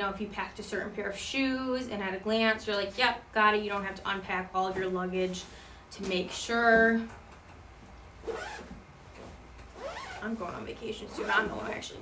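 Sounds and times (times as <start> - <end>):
zipper drawn open: 8.2 - 8.8, 9.7 - 10.4.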